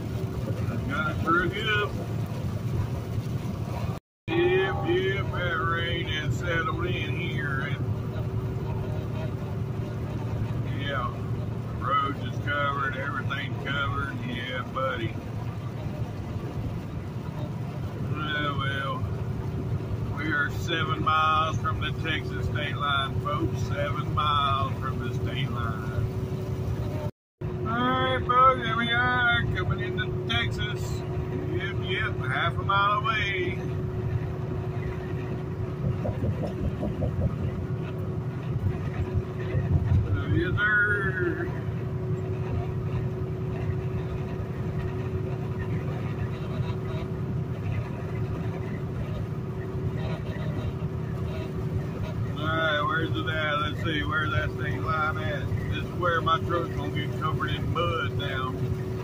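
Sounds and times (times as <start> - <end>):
truck engine and road drone: 0.0 - 59.0.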